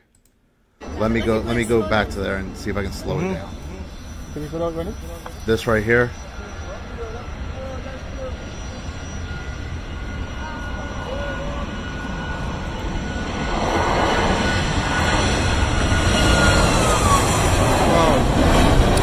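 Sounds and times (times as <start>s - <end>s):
faint passenger voices: 0.8s - 9.4s, 10.1s - 12.2s
jet engines roaring: 0.8s - 19.0s
thin steady whine: 0.8s - 19.0s.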